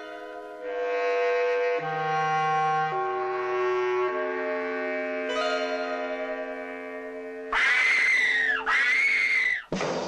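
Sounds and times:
person screaming: 7.5 - 9.7.

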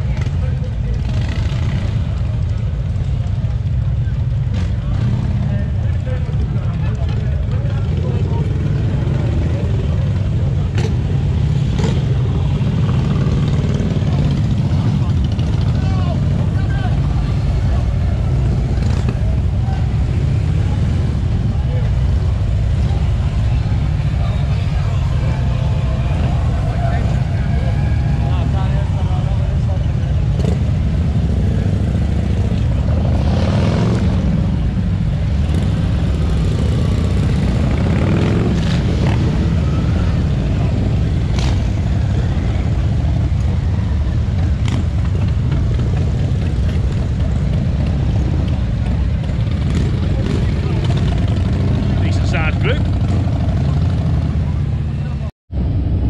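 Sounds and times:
crowd talking: 0.0 - 56.0
motorcycle engines rumbling: 0.0 - 56.0.

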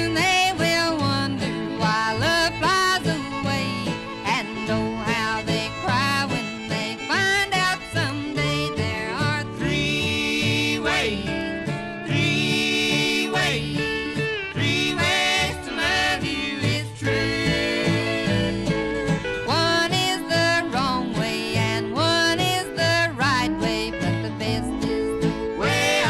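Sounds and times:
country and western band playing: 0.0 - 26.0.

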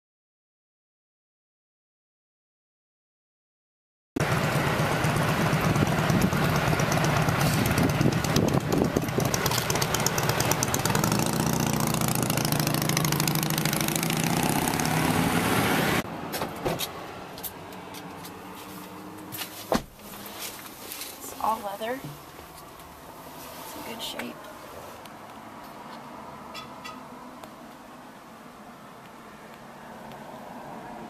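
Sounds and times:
loud motor vehicle noise: 4.2 - 31.0.

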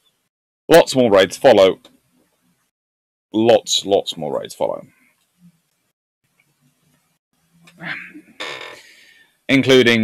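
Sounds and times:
man talking: 0.7 - 1.9, 3.4 - 4.9, 9.5 - 10.0.

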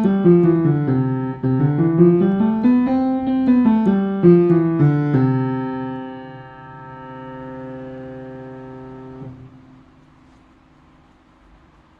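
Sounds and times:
digital piano chord ringing: 0.0 - 10.0
faint background hiss: 0.0 - 11.9.

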